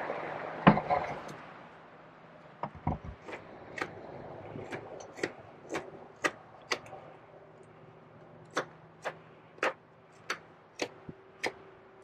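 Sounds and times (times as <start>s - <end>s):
carving knife slicing wood: 4.6s - 6.9s.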